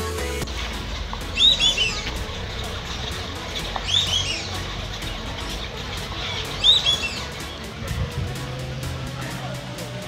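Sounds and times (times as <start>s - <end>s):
music: 0.0s - 10.0s
bird calling sharply: 1.3s - 4.7s, 5.5s - 7.6s.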